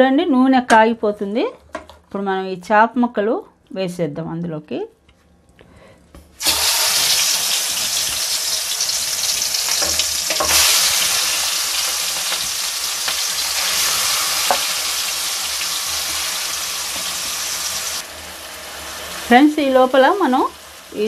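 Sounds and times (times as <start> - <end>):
fish sizzling in hot oil: 6.4 - 21.0.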